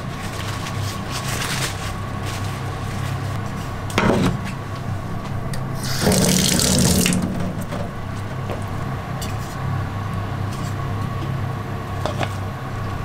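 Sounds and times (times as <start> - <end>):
tap water running into sink: 5.8 - 7.8.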